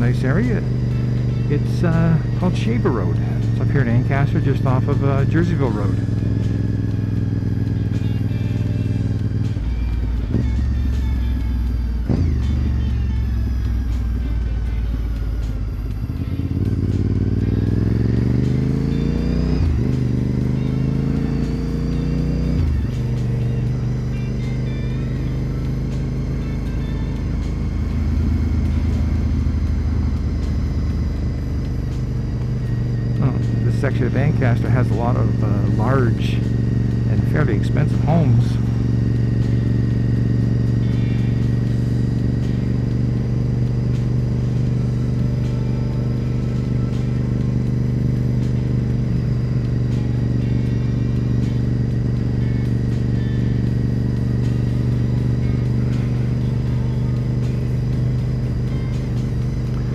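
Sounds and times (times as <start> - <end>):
motorcycle engine accelerating: 0.0 - 59.9.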